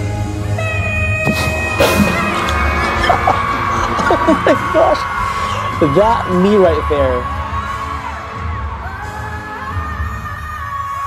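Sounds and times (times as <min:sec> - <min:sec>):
band backing: 0:00.0 - 0:05.2.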